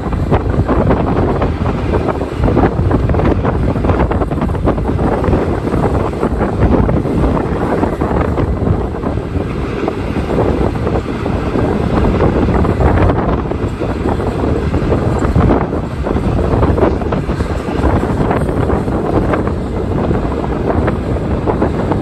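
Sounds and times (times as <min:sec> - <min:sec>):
freight train rolling past: 0:00.0 - 0:22.0
wind buffeting microphone: 0:00.0 - 0:22.0.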